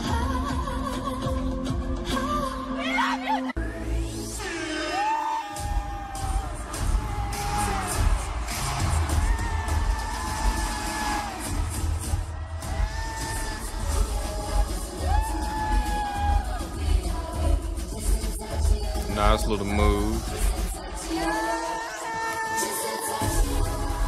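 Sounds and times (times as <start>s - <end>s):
crowd cheering: 4.7s - 16.8s, 21.0s - 23.4s
bass-heavy beat: 5.6s - 20.8s
women singing long notes: 12.8s - 19.1s, 20.2s - 24.0s.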